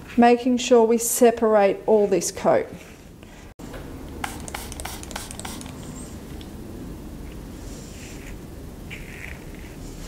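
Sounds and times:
spray bottle spritzing: 4.2s - 5.9s.

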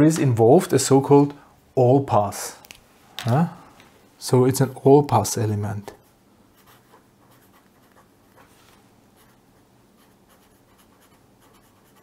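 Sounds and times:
felt-tip pen writing on paper: 10.0s - 12.0s.

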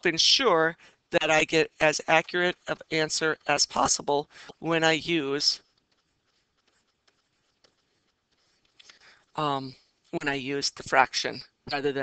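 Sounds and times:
stylus tapping on tablet screen: 5.5s - 9.4s.

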